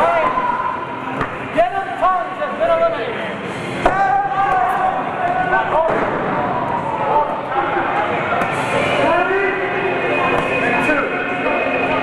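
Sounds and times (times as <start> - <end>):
people shouting and yelling: 0.0 - 3.0, 3.8 - 12.0.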